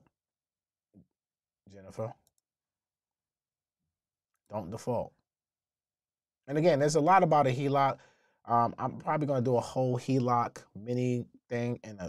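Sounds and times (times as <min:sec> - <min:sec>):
man speaking: 0:01.7 - 0:02.2, 0:04.5 - 0:05.1, 0:06.5 - 0:12.0.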